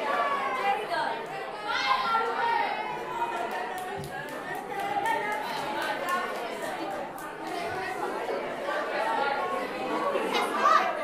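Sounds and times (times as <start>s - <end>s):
young people chattering: 0.0s - 11.0s.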